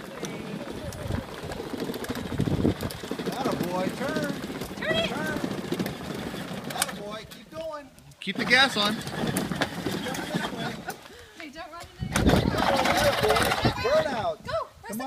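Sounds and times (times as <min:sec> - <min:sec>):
toy truck wheels rumbling on asphalt: 0:00.0 - 0:14.2.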